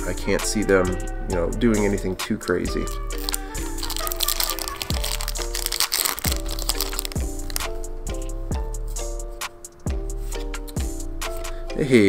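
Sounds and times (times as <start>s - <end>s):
background music with beat: 0.0s - 12.0s
foil wrapper crinkling and tearing: 2.8s - 7.8s.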